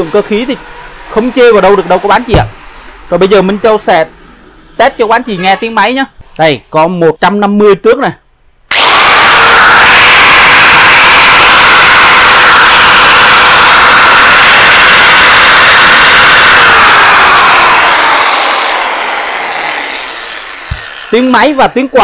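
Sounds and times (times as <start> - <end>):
angle grinder whining: 8.7 - 22.0.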